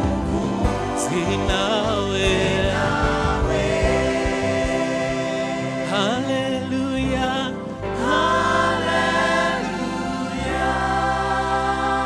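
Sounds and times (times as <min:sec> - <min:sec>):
choir singing gospel song: 0:00.0 - 0:12.0
instrumental backing: 0:00.0 - 0:12.0.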